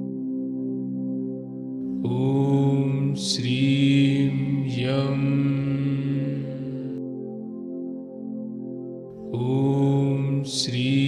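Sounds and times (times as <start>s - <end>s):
ambient drone music: 0.0s - 11.0s
chanted syllable: 1.9s - 7.0s, 9.2s - 11.0s.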